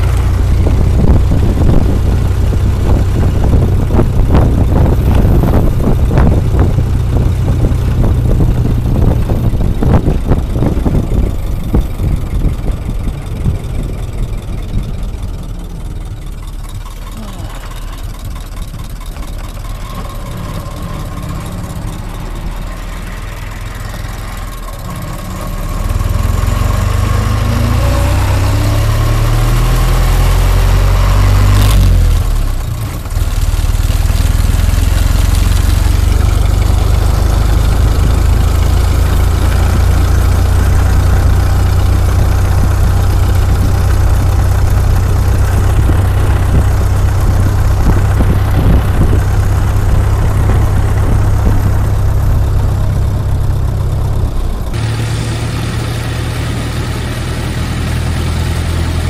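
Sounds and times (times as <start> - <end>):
wind rumble on microphone: 0.0 - 15.8, 25.9 - 54.8
car engine running: 0.0 - 59.0.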